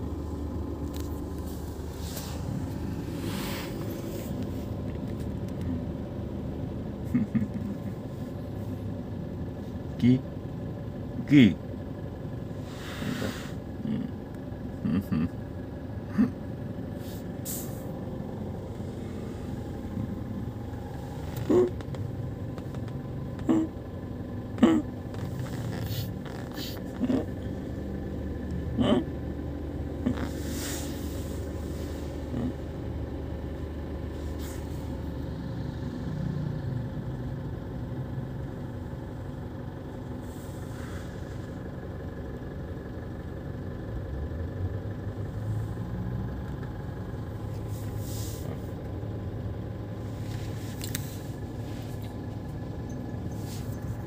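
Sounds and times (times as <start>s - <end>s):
car cabin rumble while driving: 0.0s - 54.0s
short pitched vocal sound: 13.0s - 14.2s, 14.8s - 15.4s, 16.1s - 16.4s, 21.3s - 21.8s, 23.4s - 23.8s, 24.6s - 27.6s, 28.7s - 29.2s, 32.2s - 32.8s
short hiss: 17.0s - 17.9s.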